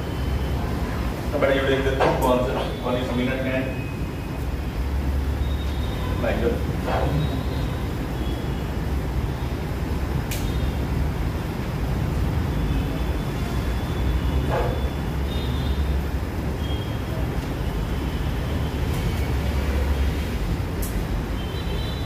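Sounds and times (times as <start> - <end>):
sharp click: 10.3 - 10.6.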